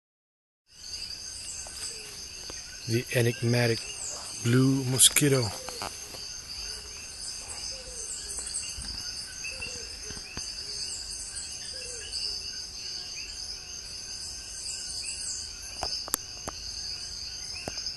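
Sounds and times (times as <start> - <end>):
insect chorus drone: 0.7 - 17.9
small chirps: 1.7 - 6.8.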